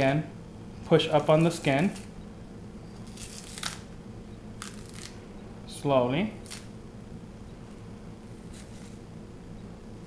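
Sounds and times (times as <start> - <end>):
plantain skin tearing: 3.0 - 3.9, 4.6 - 5.2, 6.4 - 6.7.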